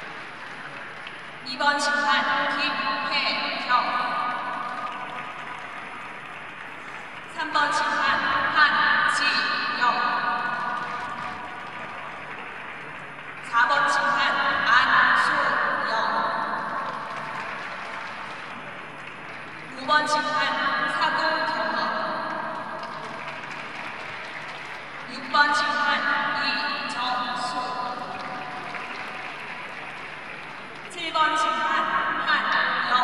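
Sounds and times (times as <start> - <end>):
noisy hum of large hall: 0.0 - 33.0
public address announcement: 0.0 - 33.0.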